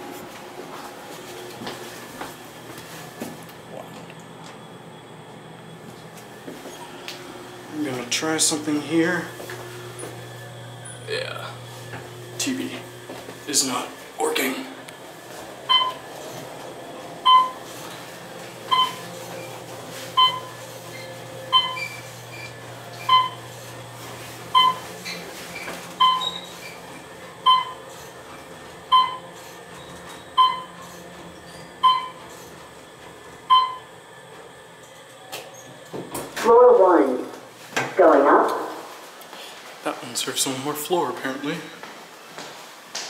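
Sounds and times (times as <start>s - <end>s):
elevator electronic beeps: 15.6s - 16.2s, 17.2s - 17.7s, 18.6s - 23.5s, 24.5s - 26.7s, 27.4s - 27.9s, 28.9s - 32.4s, 33.4s - 34.0s.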